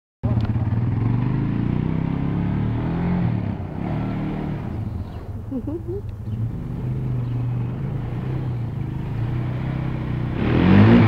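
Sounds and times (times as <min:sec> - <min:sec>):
quad bike engine revving: 0:00.2 - 0:11.0.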